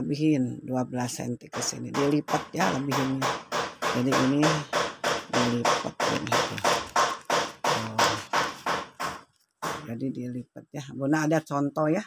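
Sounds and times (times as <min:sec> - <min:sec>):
rhythmic tapping beat: 0:01.5 - 0:10.0.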